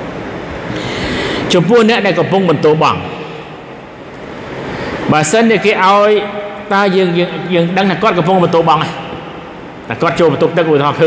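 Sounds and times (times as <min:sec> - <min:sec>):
hissing room noise: 0:00.0 - 0:11.0.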